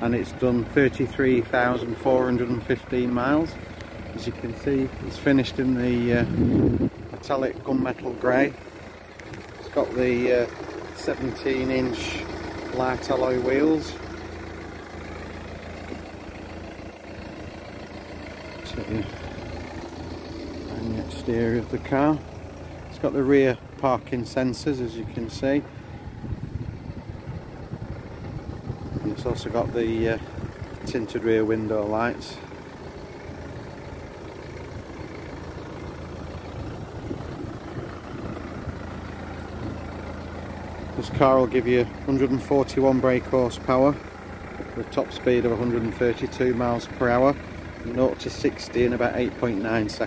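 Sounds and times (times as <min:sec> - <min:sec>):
diesel engine idling: 0:00.0 - 0:50.0.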